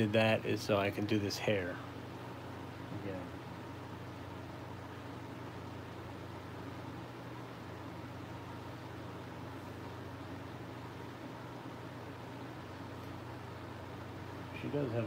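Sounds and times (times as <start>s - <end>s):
fan running: 0.0s - 15.0s.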